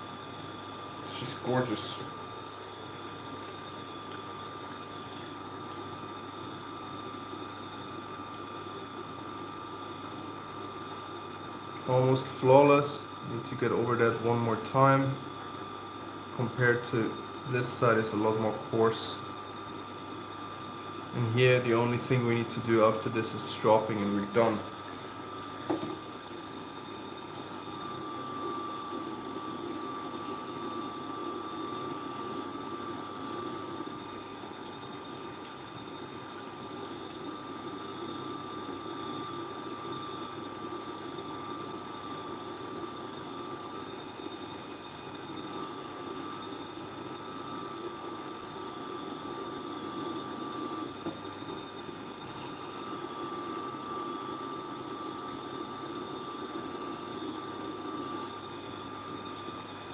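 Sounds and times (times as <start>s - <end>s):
sharpening machine humming: 21.1s - 35.0s, 36.3s - 59.9s.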